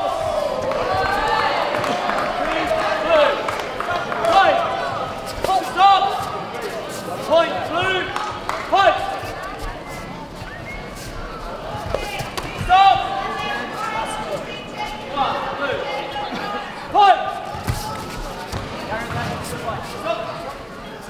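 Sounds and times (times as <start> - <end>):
loud shouts: 0.0 - 6.2, 11.9 - 17.9
voices shouting in a hall: 0.0 - 21.0.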